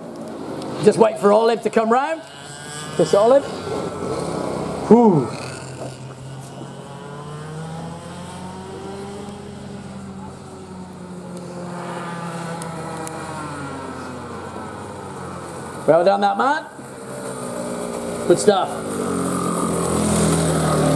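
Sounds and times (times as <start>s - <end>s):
kart engine running: 0.0s - 20.9s.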